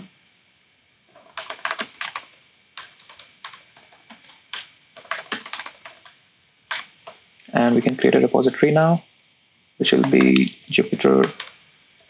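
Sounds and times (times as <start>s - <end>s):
typing on computer keyboard: 1.2s - 6.1s, 10.0s - 11.6s.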